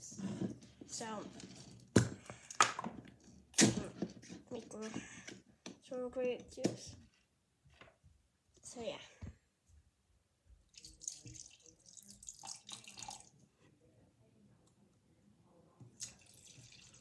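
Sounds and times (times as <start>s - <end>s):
liquid pouring and splashing: 10.7s - 13.4s, 16.0s - 17.0s.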